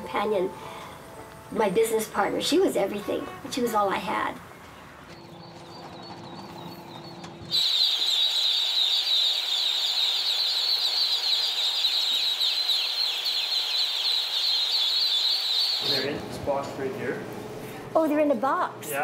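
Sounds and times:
ducklings peeping: 0:04.6 - 0:16.1.

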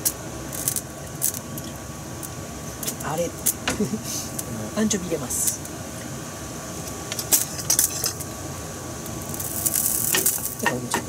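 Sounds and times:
onion sizzling in a frying pan: 0:00.0 - 0:11.0.

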